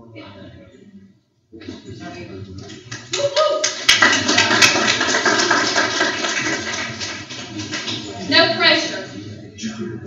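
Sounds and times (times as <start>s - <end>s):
room full of people applauding: 2.7s - 9.0s.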